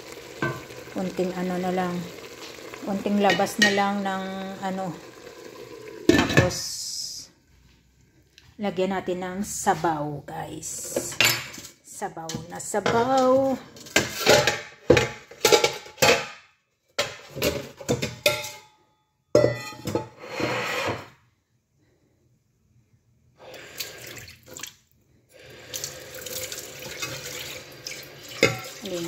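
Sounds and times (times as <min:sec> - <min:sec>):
water splashing into steel pot: 0:00.0 - 0:06.6, 0:23.8 - 0:24.8, 0:25.7 - 0:29.0
water filling pot: 0:00.0 - 0:07.0, 0:23.6 - 0:24.8, 0:25.4 - 0:29.0
pot clattering: 0:00.2 - 0:00.9, 0:02.6 - 0:04.2, 0:06.0 - 0:06.6, 0:12.3 - 0:16.4, 0:17.0 - 0:18.7, 0:19.3 - 0:20.2, 0:28.3 - 0:29.0.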